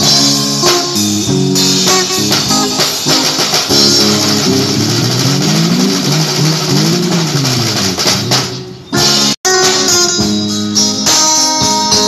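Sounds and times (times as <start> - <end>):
vehicle engine revving: 4.0 - 8.6.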